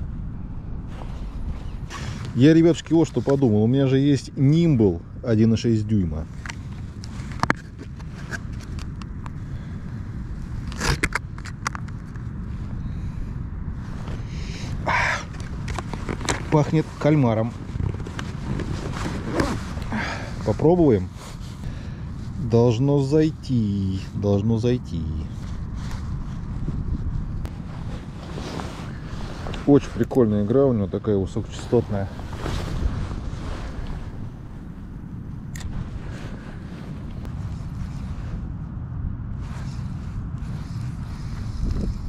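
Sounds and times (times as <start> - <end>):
steady low rumble: 0.0 - 42.0
wind buffeting microphone: 0.0 - 42.0.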